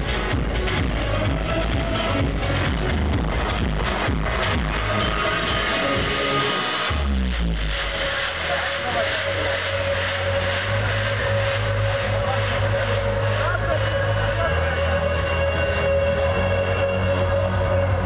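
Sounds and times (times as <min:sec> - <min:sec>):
electronic dance music: 0:00.0 - 0:18.0
voices of dancing crowd: 0:00.0 - 0:18.0.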